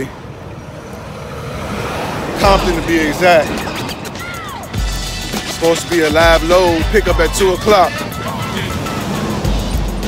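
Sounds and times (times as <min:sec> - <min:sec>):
low rumble of passing vehicle: 0:00.0 - 0:04.7
hiss of passing cars: 0:00.0 - 0:04.8.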